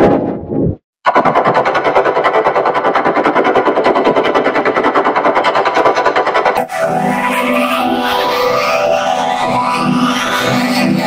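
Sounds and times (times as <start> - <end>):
stuttering processed logo audio: 1.1 - 11.0
synth-like processed held tones: 1.1 - 11.0.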